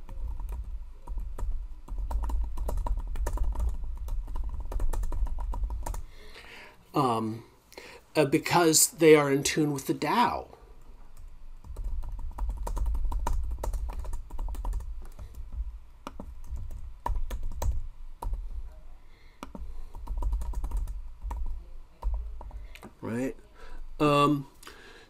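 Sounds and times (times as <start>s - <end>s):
computer keyboard typing: 0.0s - 6.1s, 11.2s - 18.5s, 19.4s - 22.9s.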